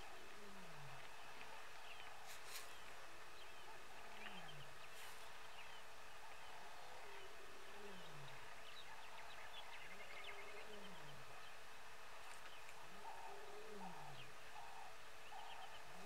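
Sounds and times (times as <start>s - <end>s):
small birds chirping: 0.0s - 16.0s.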